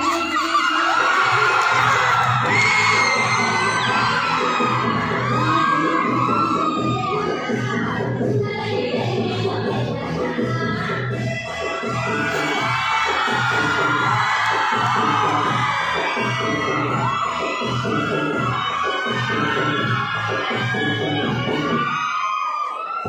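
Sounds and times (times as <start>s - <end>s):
crowd cheering and whooping: 0.0s - 8.2s, 11.5s - 23.0s
dance music with steady beat: 0.0s - 22.1s.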